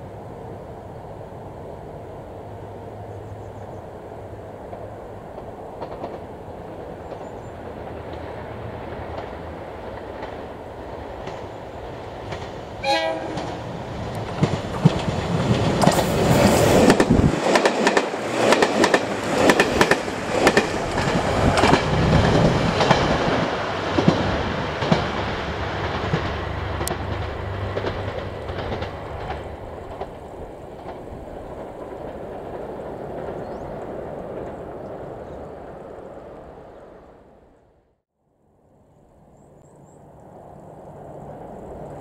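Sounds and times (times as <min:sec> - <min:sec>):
train wheels clattering: 0:04.7 - 0:34.8.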